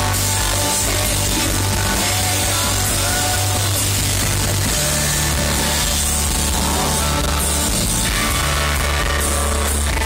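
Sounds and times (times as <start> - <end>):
bass guitar: 0.0 - 10.0
drum kit: 0.0 - 10.0
electric guitar: 0.0 - 10.0
keyboard: 0.0 - 10.0.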